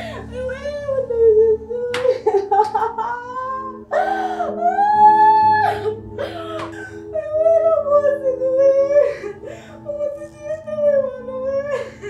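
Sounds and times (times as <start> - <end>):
woman wailing and sobbing: 0.0 - 12.0.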